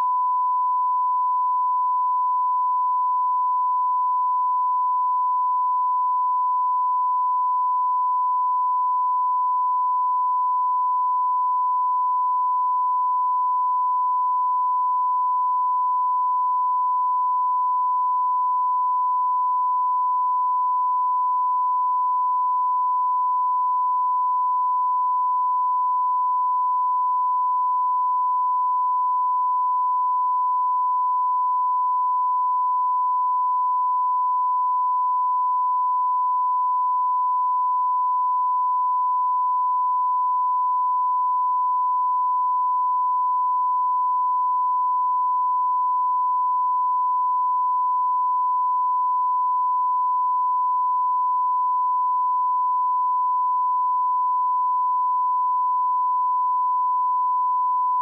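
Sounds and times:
steady sine test tone: 0:00.0 - 0:58.0.

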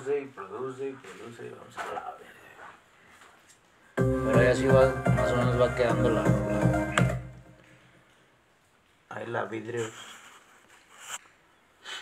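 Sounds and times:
puffs of breath: 0:11.8 - 0:12.0.

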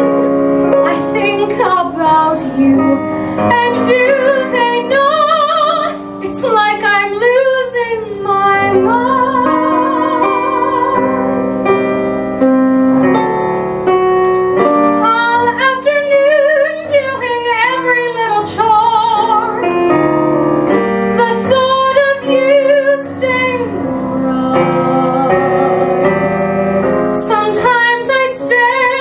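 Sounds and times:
piano chords: 0:00.0 - 0:29.0
soprano singing with vibrato: 0:00.8 - 0:11.3, 0:15.0 - 0:19.7, 0:21.1 - 0:29.0.

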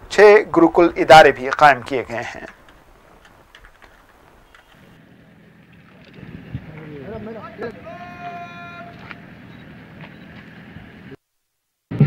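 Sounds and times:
outdoor background noise: 0:00.0 - 0:12.0
man shouting a command: 0:07.0 - 0:09.1.

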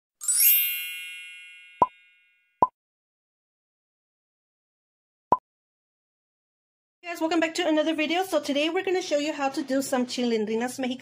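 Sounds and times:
shimmering chime: 0:00.2 - 0:02.5.

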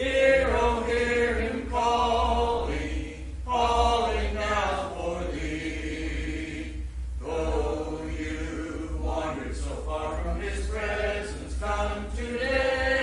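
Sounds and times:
congregation singing a hymn: 0:00.0 - 0:13.0
steady low hum: 0:00.0 - 0:13.0.

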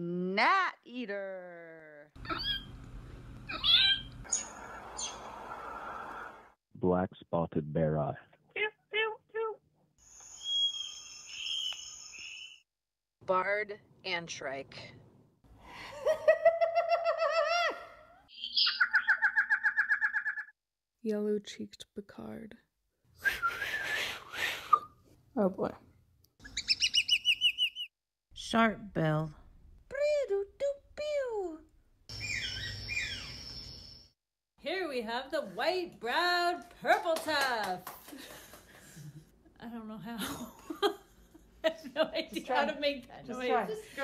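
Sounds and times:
person imitating bird squawk: 0:02.2 - 0:02.7, 0:03.5 - 0:04.1
high whistled bird call: 0:10.0 - 0:12.6, 0:26.4 - 0:27.9, 0:32.1 - 0:34.0.

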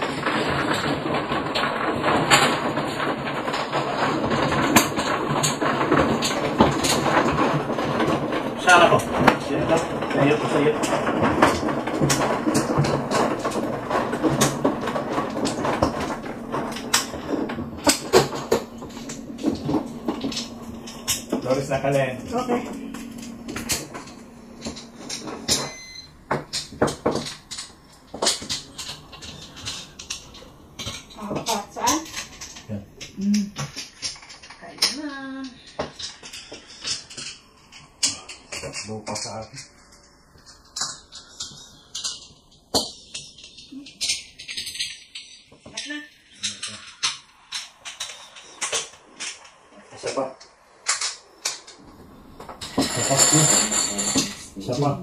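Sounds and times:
mahjong tiles clacking: 0:00.0 - 0:49.7, 0:50.4 - 0:55.0.

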